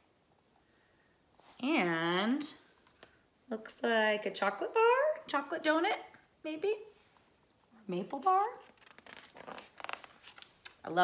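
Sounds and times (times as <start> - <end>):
woman speaking: 1.6 - 2.7, 3.5 - 7.0, 7.8 - 8.7.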